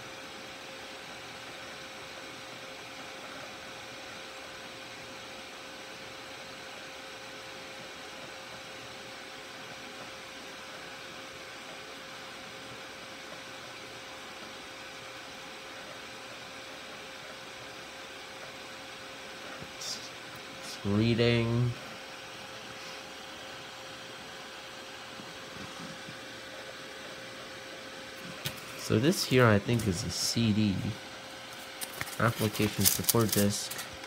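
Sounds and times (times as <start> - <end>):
computer fans whirring: 0.0 - 34.0
faint hum: 0.0 - 34.0.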